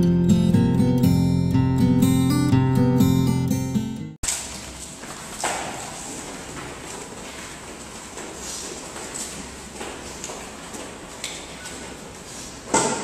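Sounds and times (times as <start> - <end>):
strummed acoustic guitar: 0.0 - 4.2.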